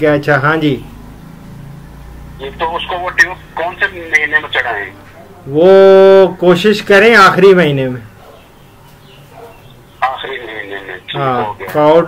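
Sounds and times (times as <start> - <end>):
man talking close: 2.4 - 8.0, 10.0 - 12.0
man talking over telephone: 2.4 - 8.0, 10.0 - 12.0.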